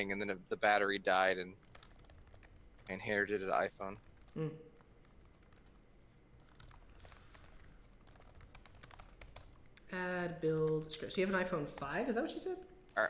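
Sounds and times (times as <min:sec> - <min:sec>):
mechanical keyboard typing: 0:01.6 - 0:05.8, 0:06.4 - 0:09.7, 0:10.5 - 0:13.0.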